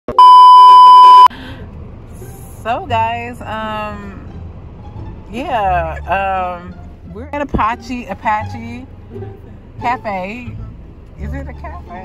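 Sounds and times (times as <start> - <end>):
high test tone beep: 0.1 - 1.3.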